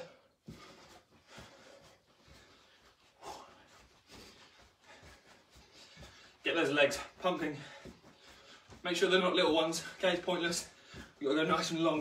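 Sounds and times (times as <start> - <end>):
footsteps in socks on a rug: 0.0 - 12.0.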